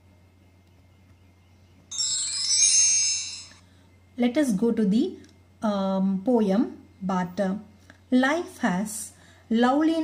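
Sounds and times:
tinkling chime: 0:01.9 - 0:03.7.

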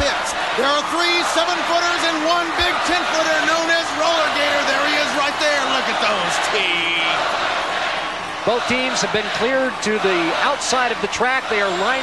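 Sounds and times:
voices talking: 0:00.0 - 0:07.3
crowd noise in an arena: 0:00.0 - 0:12.0.

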